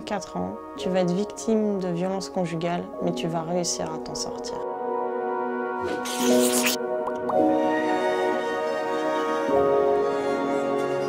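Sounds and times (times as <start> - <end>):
soft background music: 0.0 - 11.0
hissing swoosh: 5.8 - 6.8.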